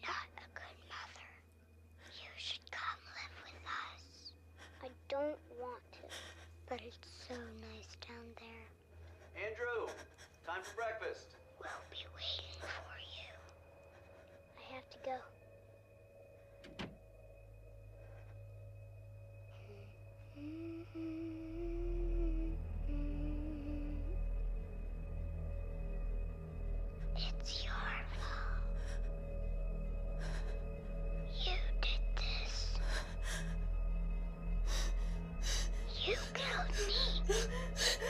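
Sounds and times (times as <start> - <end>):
low steady hum: 0.0 - 38.0.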